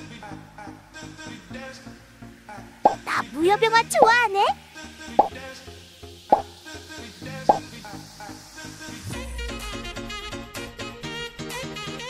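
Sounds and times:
quiet background music: 0.0 - 9.1
pop sound effects: 6.3 - 6.5.

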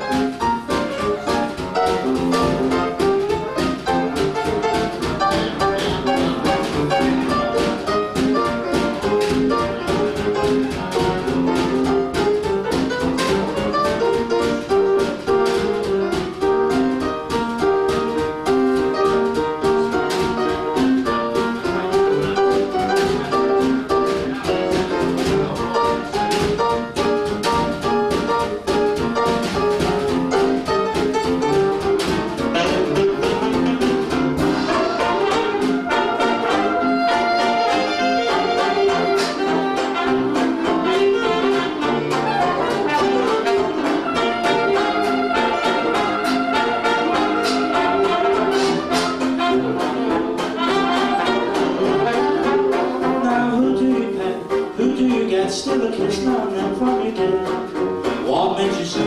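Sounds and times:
jazz band playing: 0.0 - 59.0
piano: 0.0 - 59.0
clarinet playing: 30.1 - 53.4.

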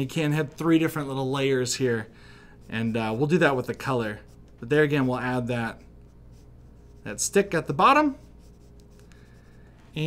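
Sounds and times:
pencil scratching on paper: 2.6 - 10.0.

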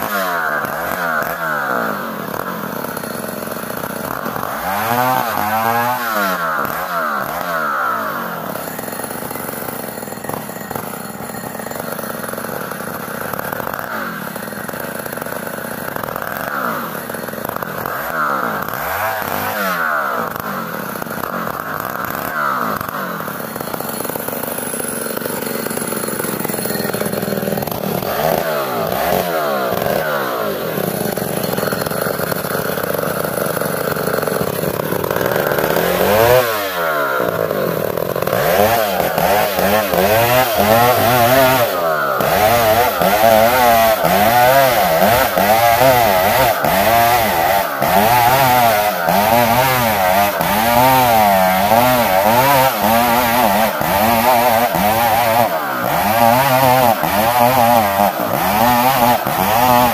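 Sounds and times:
chainsaw cutting wood: 0.0 - 59.9.

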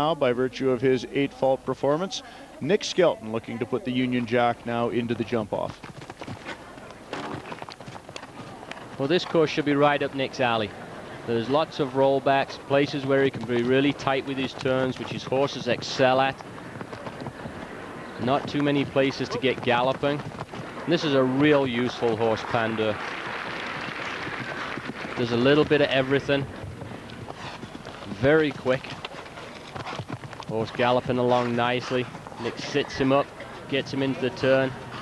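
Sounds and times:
outdoor arena background noise: 0.0 - 35.0
horse hooves on turf: 3.2 - 35.0.

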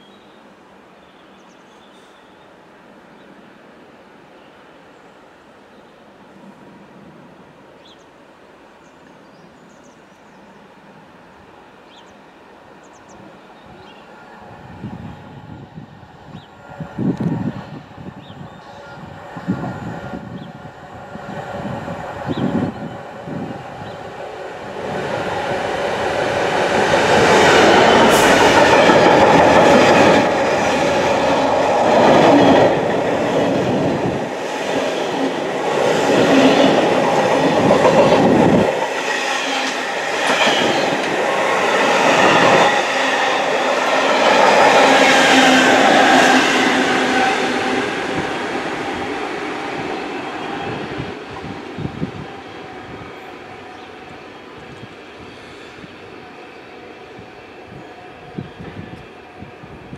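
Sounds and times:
diesel locomotive passing: 10.6 - 59.9.

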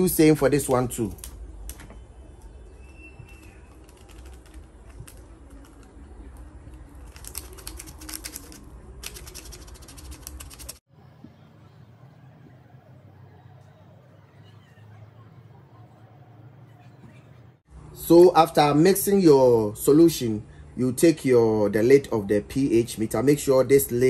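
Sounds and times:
plastic sachet crinkling: 3.3 - 10.8.

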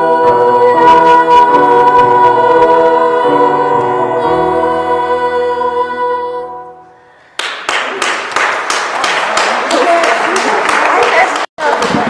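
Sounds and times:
crowd applause: 7.4 - 12.0.

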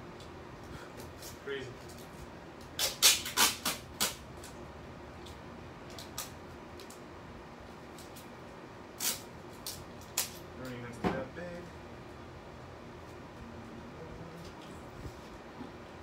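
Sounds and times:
adhesive tape ripped off roll: 2.6 - 4.5, 9.0 - 10.4.

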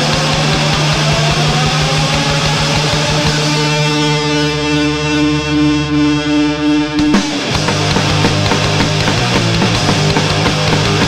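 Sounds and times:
pounding kick drum: 0.0 - 3.7, 7.0 - 11.0
distorted guitar and bass: 0.0 - 11.0.

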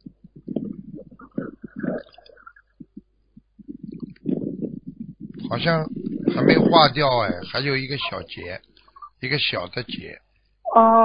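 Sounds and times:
person murmuring: 3.6 - 8.3.

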